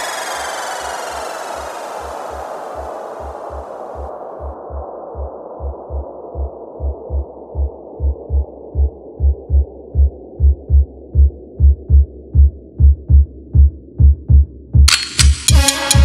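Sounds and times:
bright synth burst: 0.0s - 3.4s
low synth pad: 0.0s - 5.4s
deep sub-bass kicks: 2.8s - 14.9s.

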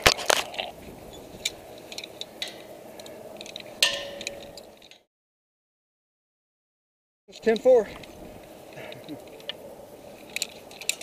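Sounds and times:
climbing hardware clicking on metal: 10.2s - 11.0s.

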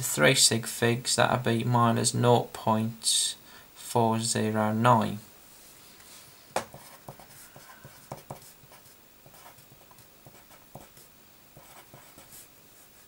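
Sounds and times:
pen scratching on paper: 6.6s - 13.0s.

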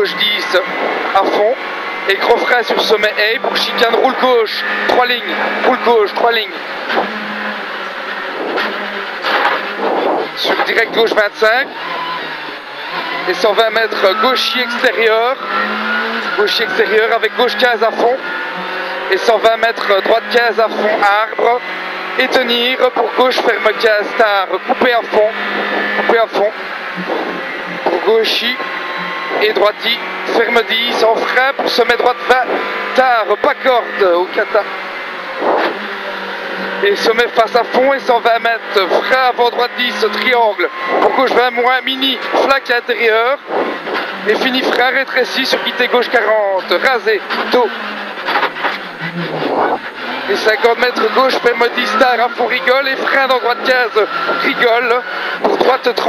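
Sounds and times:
rally car engine running: 0.0s - 56.0s
road and tyre noise: 0.0s - 56.0s
rushing burst of noise: 0.4s - 2.1s, 7.9s - 11.0s, 25.4s - 30.3s, 35.1s - 36.0s.

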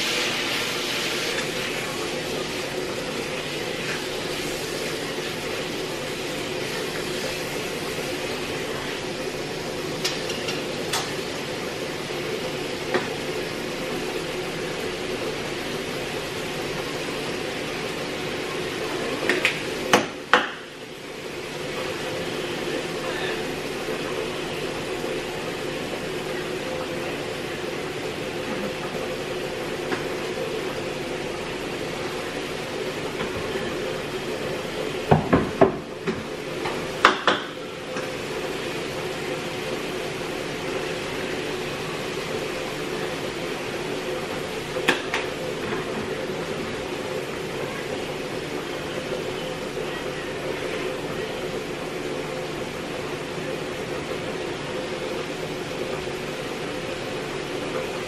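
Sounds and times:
meat sizzling in a frying pan: 0.0s - 9.0s.

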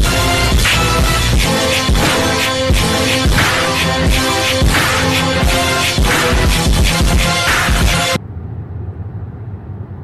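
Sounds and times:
background music: 0.0s - 8.2s
road rumble inside car: 8.2s - 10.0s.

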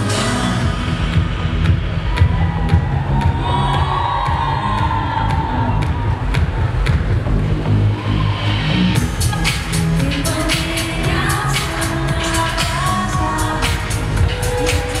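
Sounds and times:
electronic pop music with heavy bass: 0.0s - 15.0s
crowd cheering: 1.3s - 9.8s, 13.6s - 15.0s.

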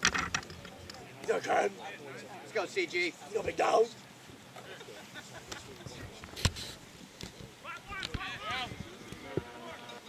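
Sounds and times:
players shouting: 7.5s - 10.0s.

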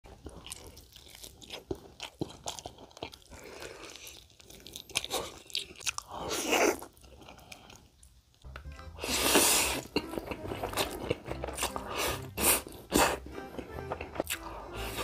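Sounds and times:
fried chicken crunching: 0.1s - 7.8s, 9.8s - 14.5s.

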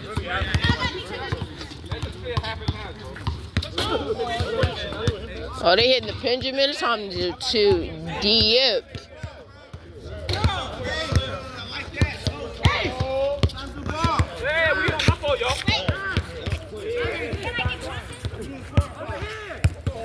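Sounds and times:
basketballs bouncing on hard court: 0.0s - 11.4s, 12.0s - 20.0s
players talking: 0.0s - 20.0s.

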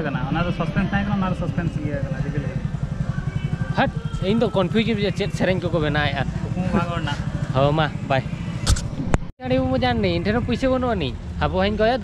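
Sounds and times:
small engine idling: 0.0s - 8.8s, 9.4s - 12.0s.

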